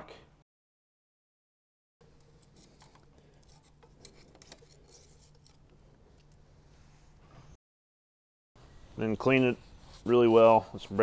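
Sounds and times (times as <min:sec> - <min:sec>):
hand scraping metal engine block: 0:09.0 - 0:11.0.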